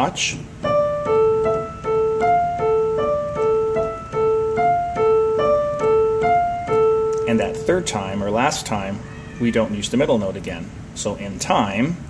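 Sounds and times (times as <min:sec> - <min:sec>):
piano broken chords: 0:00.0 - 0:10.8.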